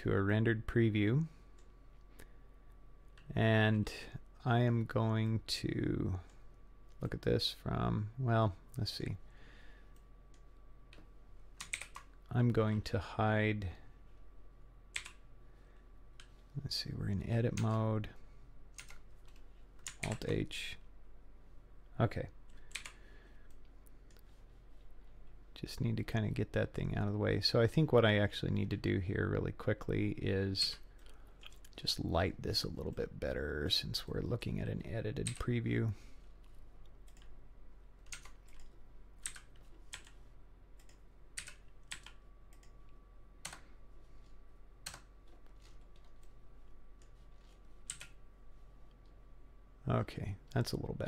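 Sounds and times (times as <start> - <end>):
keyboard keys clicking: 38.0 - 40.2, 40.8 - 42.8, 47.9 - 48.2.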